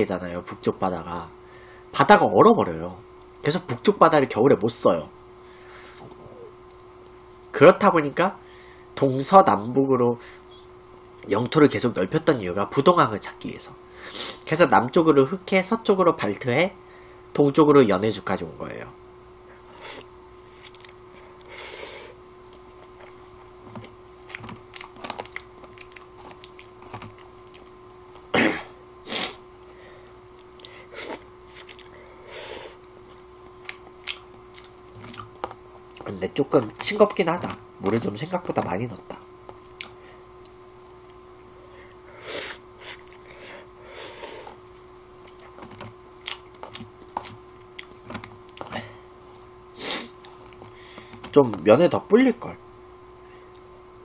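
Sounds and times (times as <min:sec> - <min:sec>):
faint hum: 0:00.0 - 0:54.0
chewing with sharp clicks: 0:24.3 - 0:27.7, 0:31.6 - 0:32.0, 0:33.6 - 0:36.1, 0:46.2 - 0:48.7.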